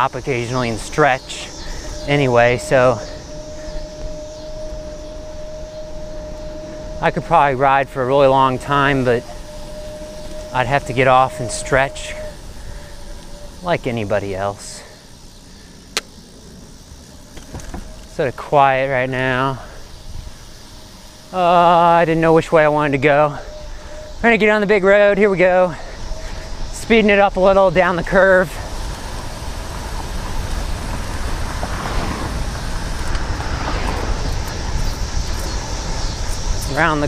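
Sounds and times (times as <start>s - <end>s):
wind on microphone: 0.6s - 14.4s, 25.8s - 37.0s
tyres on pavement: 5.9s - 37.0s.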